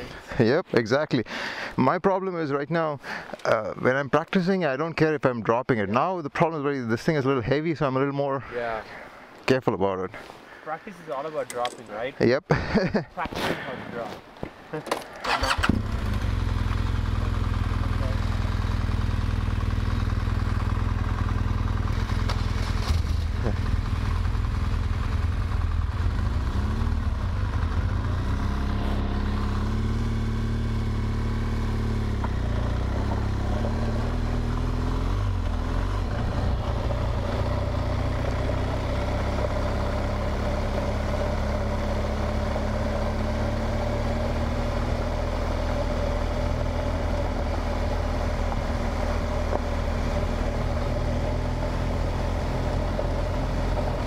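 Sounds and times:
wind and road noise: 0:13.0 - 0:54.0
motorcycle engine: 0:15.2 - 0:54.0.

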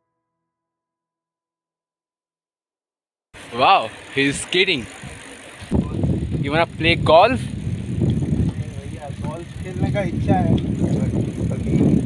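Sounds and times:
bicycle tyre noise: 0:03.4 - 0:12.0
wind on microphone: 0:05.0 - 0:12.0.

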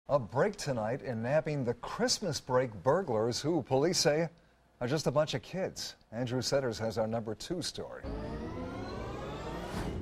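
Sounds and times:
rising whoosh of tones: 0:08.0 - 0:10.0.

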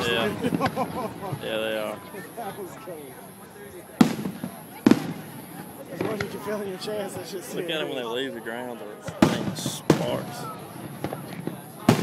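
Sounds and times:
firework shells bursting: 0:04.0 - 0:06.4.

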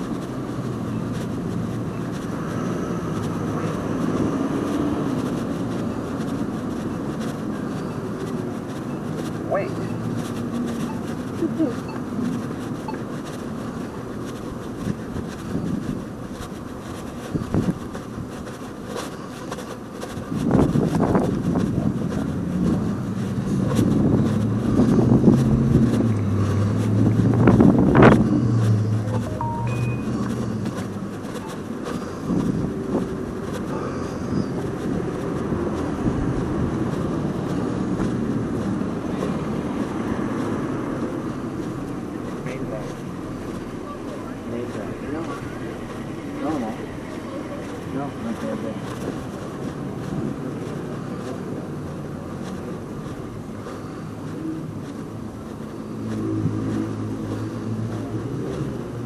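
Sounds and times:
vehicle engine passing: 0:00.0 - 0:17.8, 0:20.2 - 0:59.0
street noise: 0:00.0 - 0:59.0.

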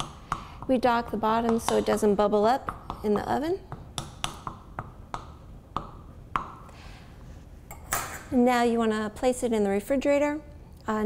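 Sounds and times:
spoon tapping pie pan: 0:00.0 - 0:06.6.

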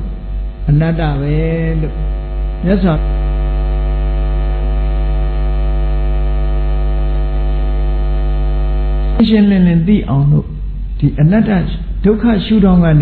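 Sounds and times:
electrical mains hum: 0:00.0 - 0:13.0
man talking: 0:00.7 - 0:03.1, 0:09.2 - 0:13.0.

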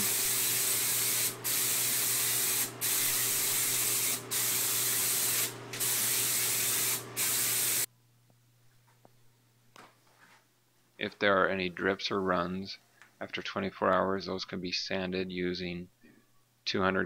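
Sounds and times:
spray gun hissing: 0:00.0 - 0:07.9.

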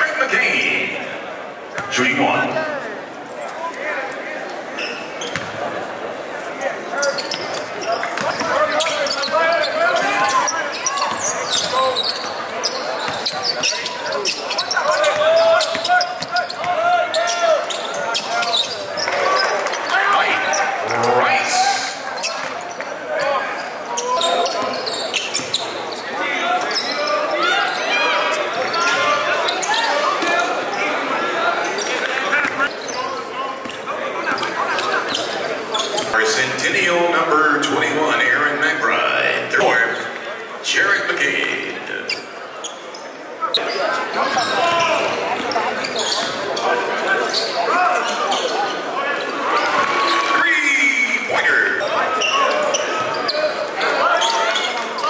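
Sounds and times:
crowd voices: 0:00.0 - 0:55.0
players' voices echoing: 0:00.0 - 0:55.0.

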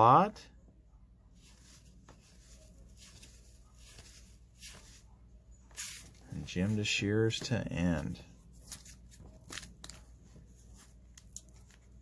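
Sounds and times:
paper rustling: 0:01.4 - 0:12.0.

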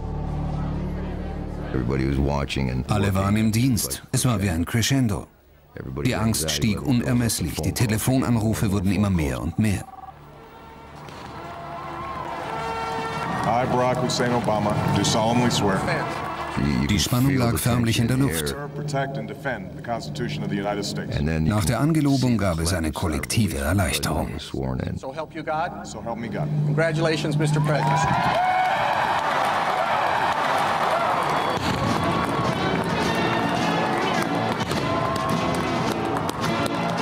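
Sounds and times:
person speaking: 0:02.0 - 0:10.1
crowd cheering and shouting: 0:11.3 - 0:17.0, 0:27.3 - 0:36.3
music playing: 0:31.3 - 0:37.0.

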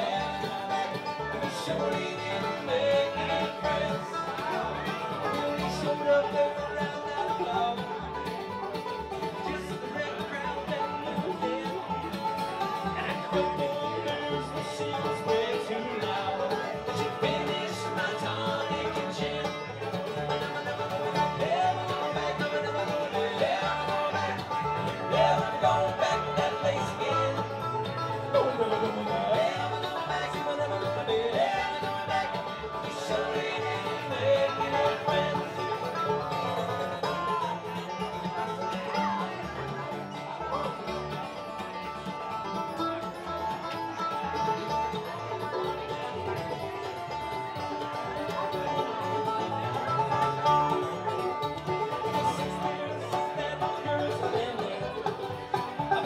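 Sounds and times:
picked banjo: 0:00.0 - 0:56.0
strummed acoustic guitar: 0:00.0 - 0:56.0
upright bass: 0:00.0 - 0:56.0.

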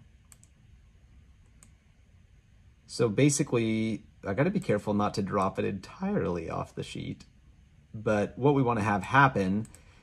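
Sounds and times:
computer mouse clicks: 0:00.0 - 0:00.6, 0:01.4 - 0:01.8, 0:09.6 - 0:09.9.

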